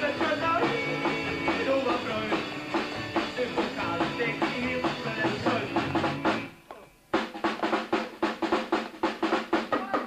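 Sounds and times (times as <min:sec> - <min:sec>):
fast drum strikes: 0:00.0 - 0:06.5, 0:07.1 - 0:10.0
rock band music: 0:00.0 - 0:10.0.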